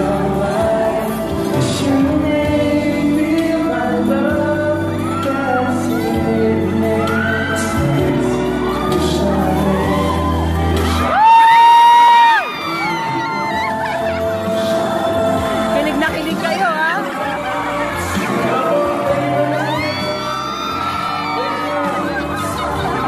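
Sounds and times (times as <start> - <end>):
man singing into a microphone: 0.0 - 11.1, 12.1 - 23.0
backing music: 0.0 - 23.0.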